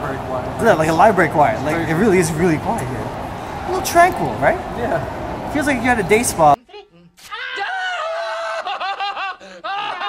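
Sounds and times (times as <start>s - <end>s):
men laughing: 7.6s - 10.0s.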